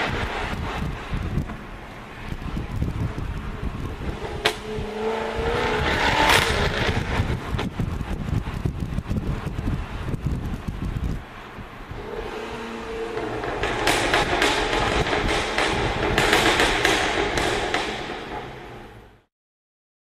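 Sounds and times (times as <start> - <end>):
car engine revving: 0.0 - 8.1, 11.8 - 19.2
exhaust cracks: 0.0 - 11.2, 11.9 - 19.2.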